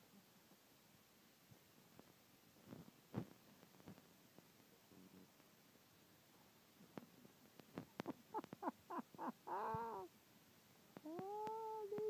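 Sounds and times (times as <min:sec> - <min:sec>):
animal calling: 0:09.2 - 0:10.1.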